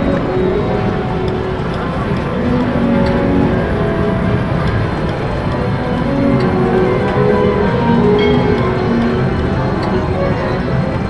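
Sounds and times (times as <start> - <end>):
steady background din: 0.0 - 11.0.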